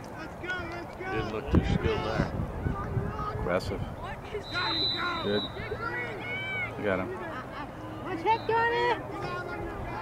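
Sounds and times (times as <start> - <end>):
voices shouting: 0.1 - 10.0.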